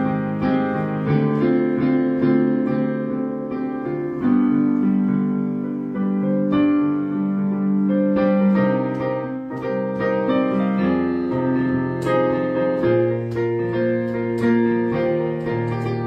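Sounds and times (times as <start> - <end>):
digital piano slow chords: 0.0 - 16.0.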